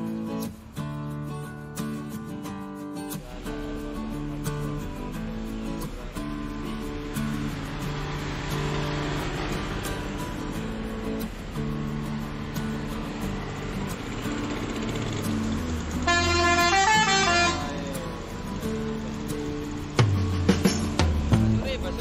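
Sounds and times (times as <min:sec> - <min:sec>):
guitar background music: 0:00.0 - 0:22.0
low rumble of bus engine: 0:03.2 - 0:22.0
multi-tone musical bus horn: 0:16.0 - 0:17.8.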